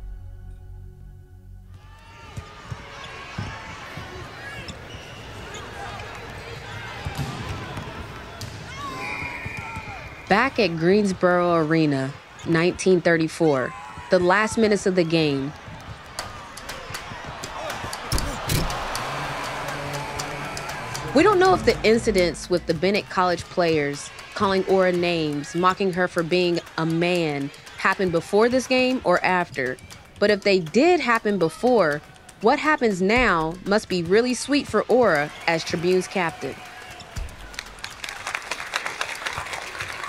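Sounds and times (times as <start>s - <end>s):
ambient music: 0.0s - 2.0s, 18.6s - 23.4s
background music: 0.0s - 2.0s, 16.6s - 40.0s
crowd voices: 1.8s - 40.0s
basketball bouncing on court: 2.3s - 4.8s, 6.6s - 10.6s, 33.2s - 35.4s
basketball bouncing: 7.0s - 8.8s, 33.2s - 35.4s.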